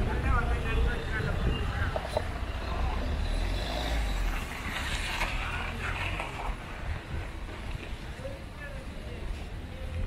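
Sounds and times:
low rumble of traffic: 0:00.0 - 0:10.0.

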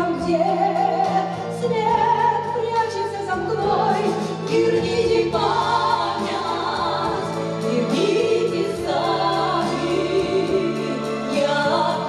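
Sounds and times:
instrumental accompaniment: 0:00.0 - 0:12.0
women singing a duet: 0:00.0 - 0:12.0.

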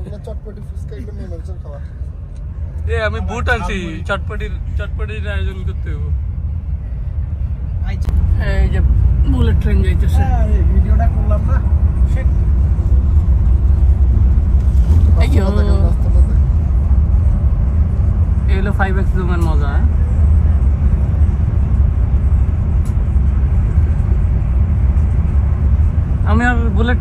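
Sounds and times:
bus rumbling at highway speed: 0:00.0 - 0:27.0.

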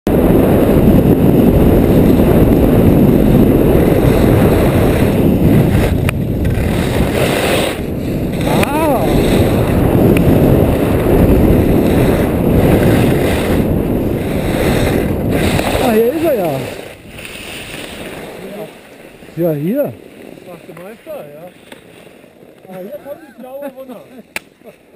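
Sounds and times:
wind rushing over microphone: 0:00.1 - 0:21.5
skis hissing on snow: 0:03.2 - 0:24.8
person speaking: 0:08.5 - 0:09.2, 0:15.6 - 0:16.8, 0:22.6 - 0:24.2.

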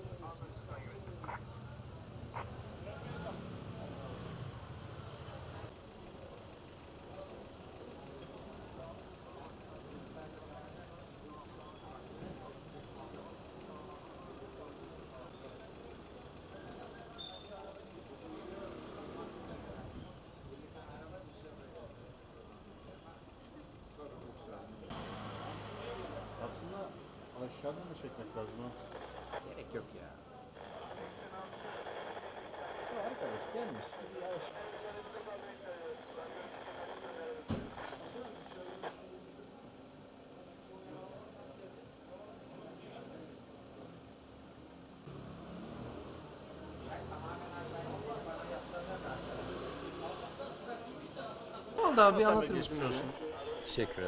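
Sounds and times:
distant voices: 0:00.0 - 0:54.0
traffic murmur: 0:00.0 - 0:54.0
people talking: 0:07.0 - 0:43.9, 0:46.6 - 0:54.0
low outdoor hum: 0:07.2 - 0:45.5.

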